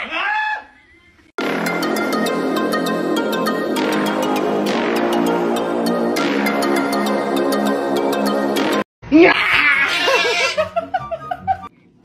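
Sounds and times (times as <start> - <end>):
person laughing loudly: 9.2 - 11.7.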